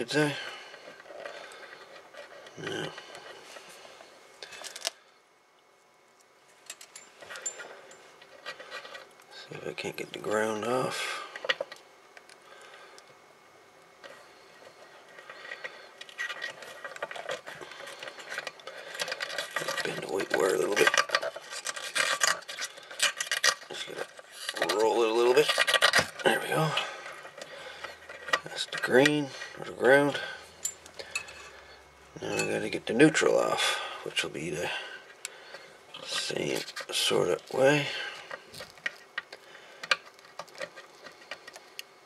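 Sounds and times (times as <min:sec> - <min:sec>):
tools scraping and clicking on metal: 0:14.0 - 0:33.6.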